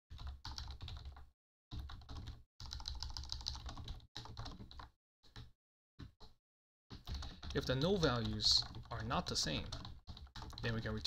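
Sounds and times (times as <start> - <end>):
typing on computer keyboard: 0.1 - 11.0.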